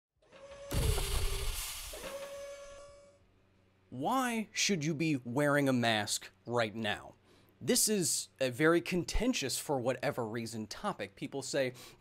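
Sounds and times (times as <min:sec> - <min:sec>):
rising hiss: 0:00.7 - 0:02.8.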